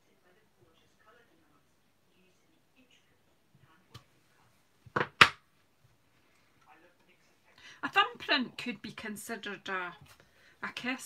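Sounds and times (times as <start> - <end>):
tools knocking on table: 4.9 - 5.4.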